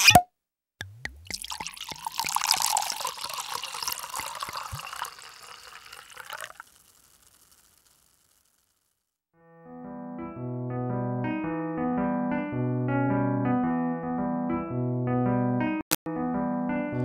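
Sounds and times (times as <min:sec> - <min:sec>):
liquid pouring and splashing: 0:01.1 - 0:08.2
faint trickle: 0:01.2 - 0:08.1.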